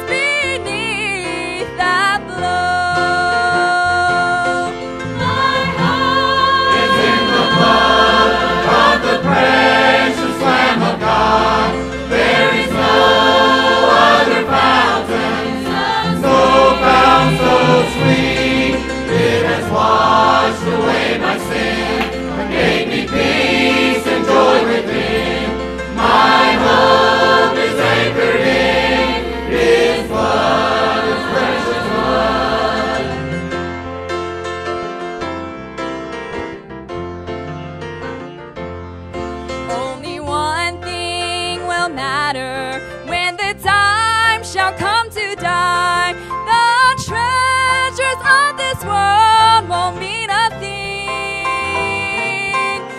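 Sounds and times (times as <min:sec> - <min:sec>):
instrumental accompaniment: 0:00.0 - 0:50.5
church choir singing a hymn: 0:04.6 - 0:33.8.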